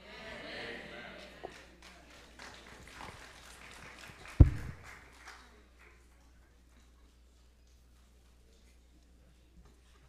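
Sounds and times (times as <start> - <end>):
hand claps: 1.4 - 6.0
microphone handling thump: 4.4 - 4.8.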